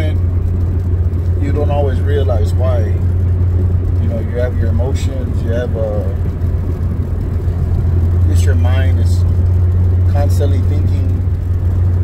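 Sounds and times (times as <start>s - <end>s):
car engine hum inside cabin: 0.0s - 12.0s.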